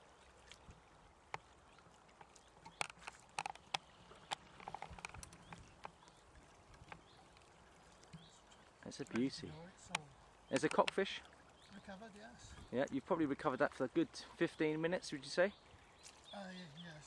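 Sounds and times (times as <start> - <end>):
shallow river water sloshing: 0.0 - 17.0.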